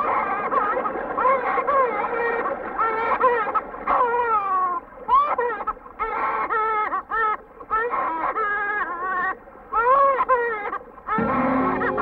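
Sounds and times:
film music with low notes: 0:11.2 - 0:12.0.

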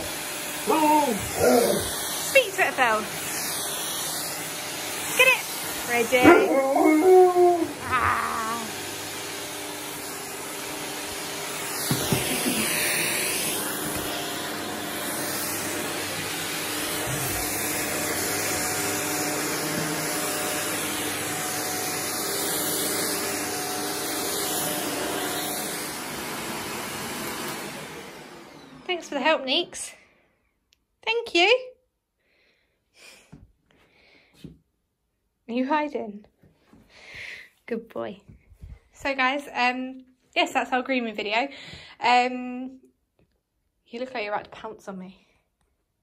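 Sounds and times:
vacuum cleaner running on carpet: 0:00.0 - 0:30.0
dog whining: 0:00.7 - 0:02.0, 0:06.1 - 0:08.7.

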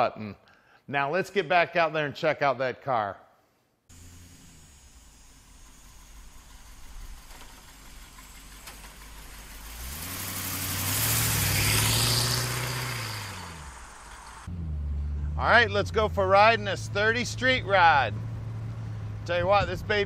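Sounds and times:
car engine driving past: 0:07.8 - 0:19.4.

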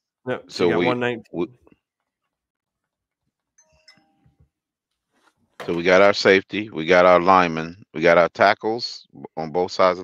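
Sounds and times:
faint steady chime tones: 0:03.6 - 0:04.2.

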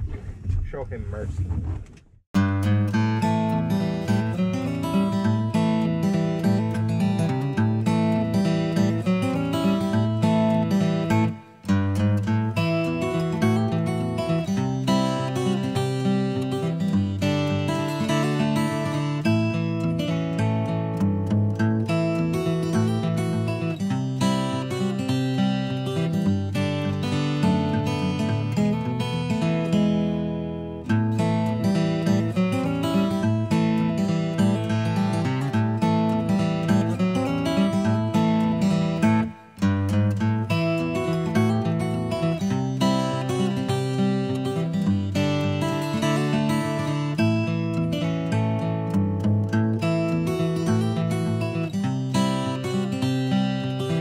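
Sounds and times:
strummed acoustic guitar music: 0:02.4 - 0:54.0.

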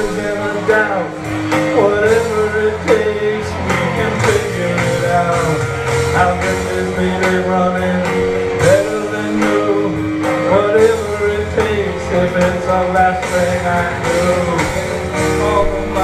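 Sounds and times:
drum beat: 0:00.0 - 0:16.0
guitar: 0:00.0 - 0:16.0.

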